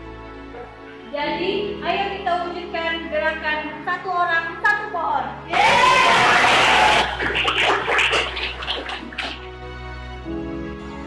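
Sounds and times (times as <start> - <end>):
soft background music: 0.0 - 11.0
children cheering and shouting: 5.5 - 7.3
clapping: 6.2 - 9.5.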